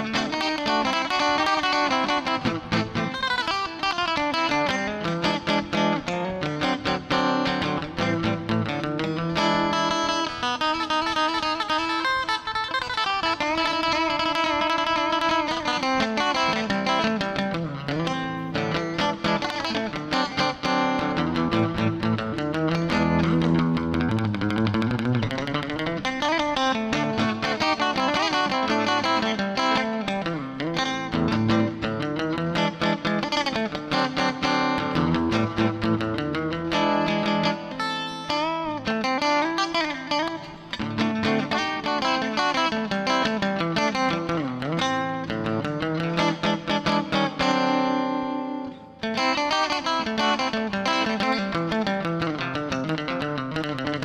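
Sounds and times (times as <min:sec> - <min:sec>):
acoustic guitar solo: 0:00.0 - 0:54.0.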